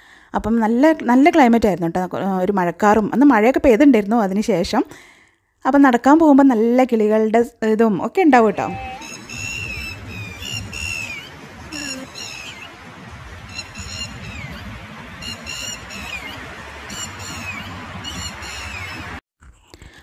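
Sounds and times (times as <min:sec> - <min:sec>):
low background rumble: 0:08.4 - 0:19.1
bird chirping: 0:08.4 - 0:19.2.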